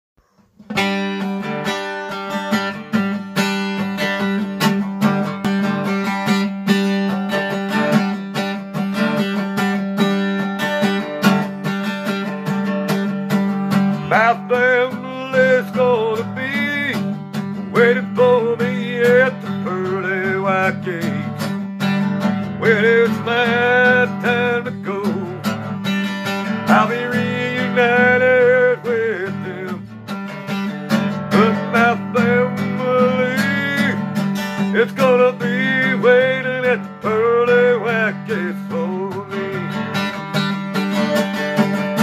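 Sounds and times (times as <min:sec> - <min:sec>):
guitar strumming: 0:00.2 - 0:42.0
man singing: 0:13.9 - 0:40.2.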